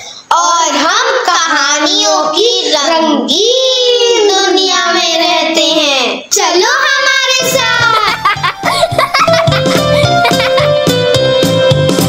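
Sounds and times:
backing music with low beat: 7.4s - 12.0s.

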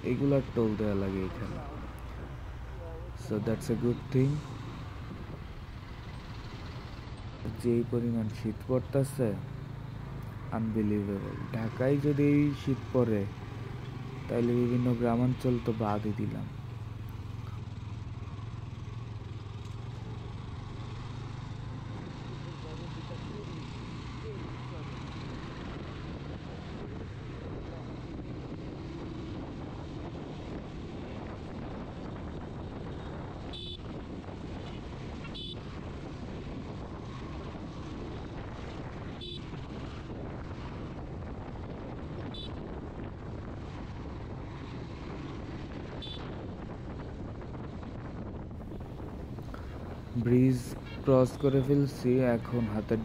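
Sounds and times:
motorcycle engine rumble: 0.0s - 53.0s
road and wind noise: 0.0s - 53.0s
traffic rumble: 0.0s - 53.0s.

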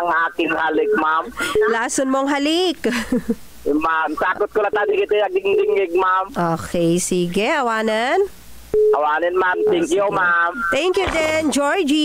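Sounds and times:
steady telephone tone: 8.8s - 11.0s.

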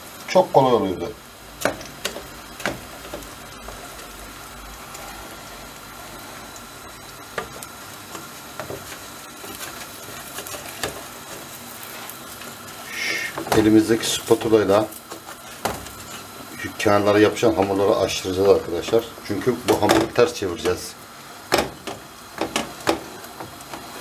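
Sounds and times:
hiss of food cooking on gas burner: 0.0s - 24.0s
metal tray knocking on stove grate: 21.5s - 23.0s.

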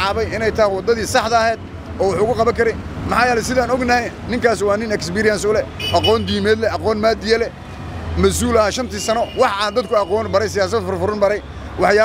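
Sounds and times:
low rumble of vehicle traffic: 0.0s - 12.0s
man talking: 0.0s - 12.0s.

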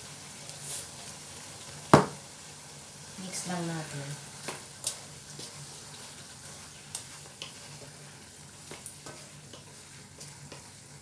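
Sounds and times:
food sizzling in a wok: 0.0s - 11.0s.

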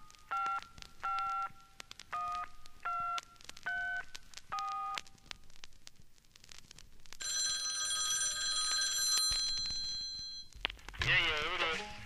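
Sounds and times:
bell-like ringing tones: 7.2s - 10.5s.

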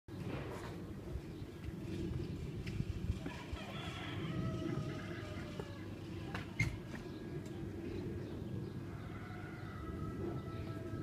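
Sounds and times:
steady low rumble: 0.1s - 11.0s.

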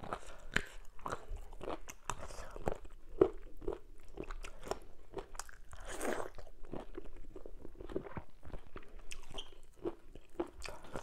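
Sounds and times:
chewing soft food: 0.0s - 11.0s.

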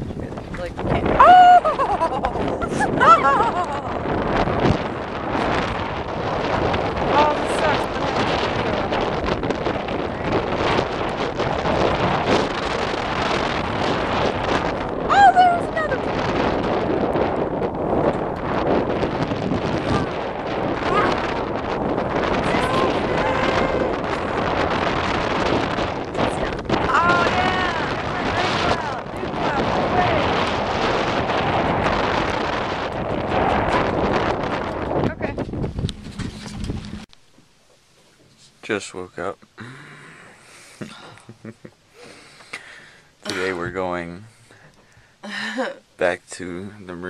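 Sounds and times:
wind buffeting microphone: 0.0s - 37.2s, 38.2s - 47.0s
person exclaiming: 1.2s - 4.0s, 15.1s - 16.0s, 22.5s - 24.0s.

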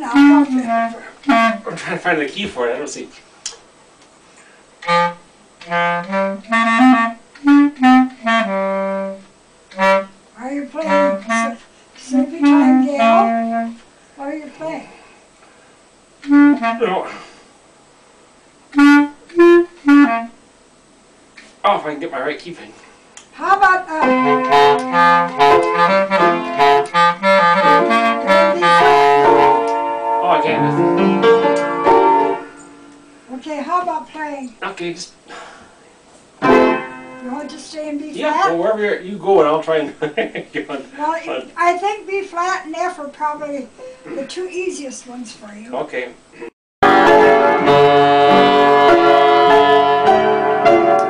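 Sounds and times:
solo clarinet notes: 0.0s - 1.8s, 4.8s - 13.8s, 16.2s - 17.1s, 18.7s - 20.4s, 23.4s - 32.6s, 46.8s - 51.0s
piano: 23.8s - 33.3s, 36.4s - 37.5s, 46.8s - 51.0s.

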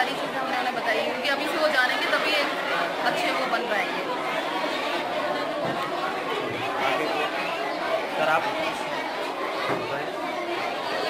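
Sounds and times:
indistinct chatter of many people: 0.0s - 11.0s.

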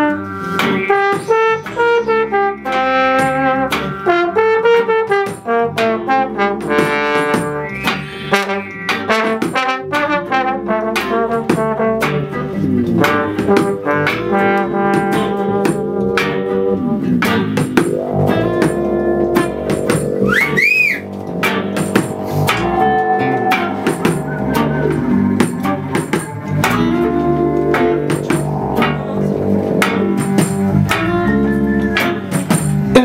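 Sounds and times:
keyboard accompaniment: 0.0s - 33.0s
trombone lead: 0.0s - 33.0s
high swooping tone: 17.8s - 32.5s.

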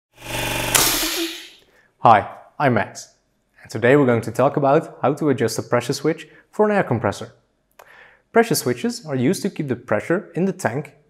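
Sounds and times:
motor-like hum: 0.1s - 1.6s
sudden loud hiss: 0.6s - 1.6s.

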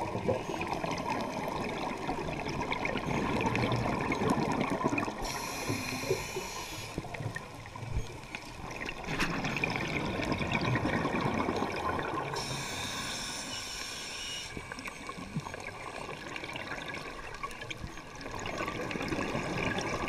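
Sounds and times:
bubbling exhale underwater: 0.0s - 6.5s, 8.7s - 12.7s, 18.3s - 20.0s
regulator hissing inhale: 5.2s - 7.1s, 12.4s - 15.0s.

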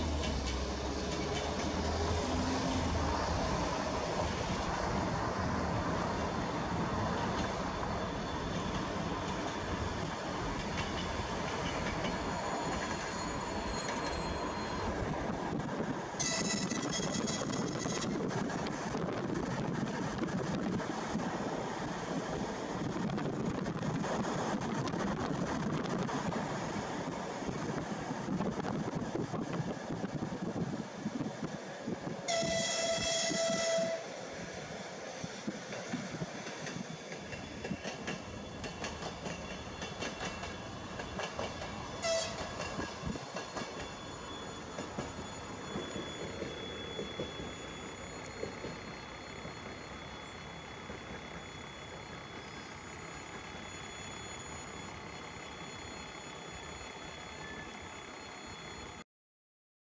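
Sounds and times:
train wheels on rails: 0.0s - 59.0s
train horn: 16.2s - 18.1s, 32.3s - 34.1s, 42.0s - 42.5s.

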